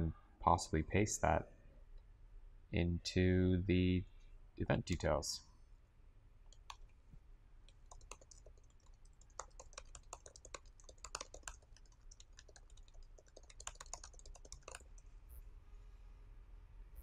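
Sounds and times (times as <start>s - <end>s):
typing on computer keyboard: 7.8s - 15.0s.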